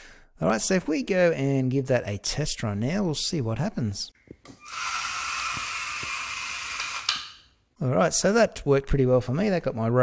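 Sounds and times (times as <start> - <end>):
robot motors whirring: 4.6 - 7.1.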